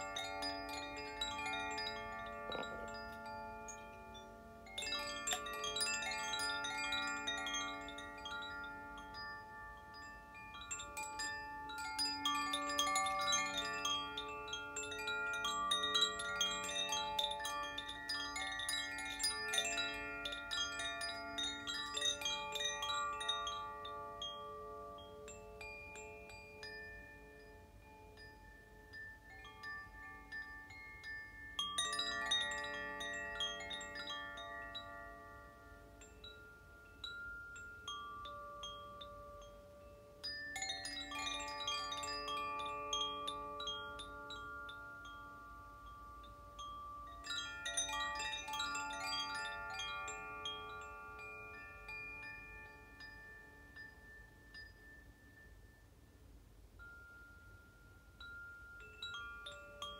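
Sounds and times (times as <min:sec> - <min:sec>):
wind chimes ringing: 0:00.0 - 0:59.9.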